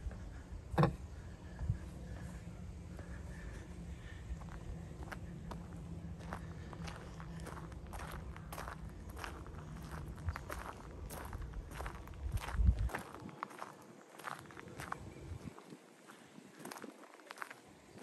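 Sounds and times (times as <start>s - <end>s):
low rumble: 0.0s - 13.4s
footsteps on bark chips: 4.4s - 18.0s.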